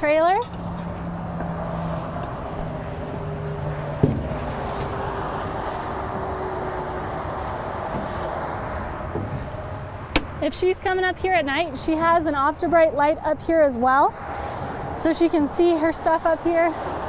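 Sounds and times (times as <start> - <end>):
motor vehicle running: 0.0 - 17.0
footstep on metal trailer: 3.9 - 5.0.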